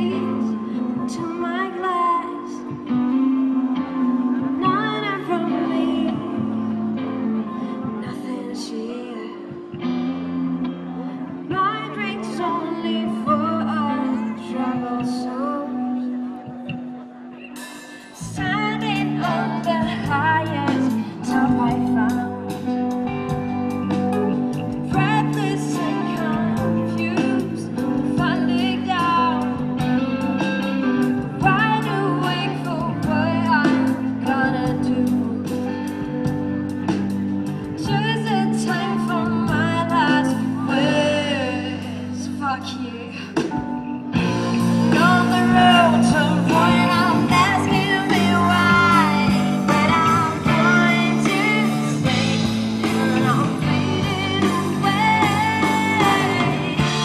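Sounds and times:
bass: 0.0s - 57.0s
electric guitar: 0.0s - 57.0s
keyboard sustained notes: 0.0s - 57.0s
live band playing: 0.0s - 57.0s
woman singing: 0.0s - 57.0s.

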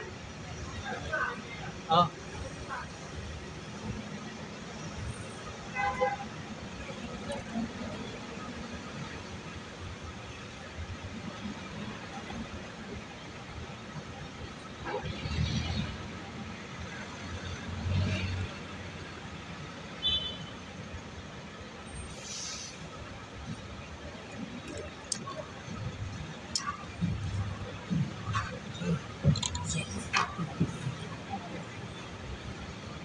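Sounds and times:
hum of traffic: 0.0s - 33.0s
vehicles passing: 0.0s - 33.0s.

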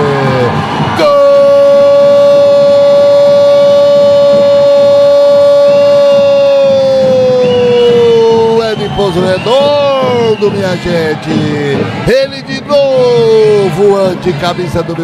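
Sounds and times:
commentator shouting goal: 0.0s - 15.0s.

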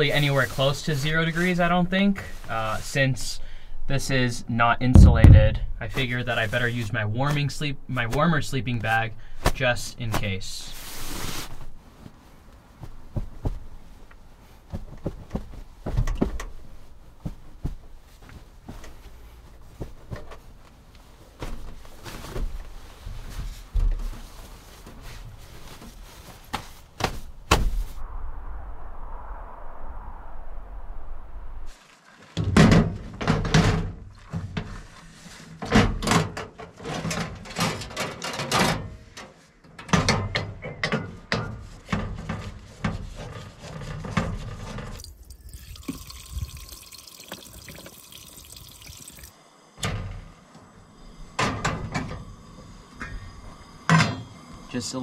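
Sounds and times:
steady hiss: 0.0s - 4.4s, 45.0s - 55.0s.

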